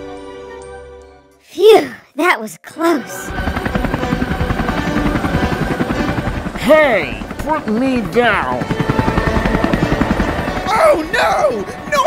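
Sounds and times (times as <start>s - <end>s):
helicopter rotor chopping: 3.1s - 12.0s.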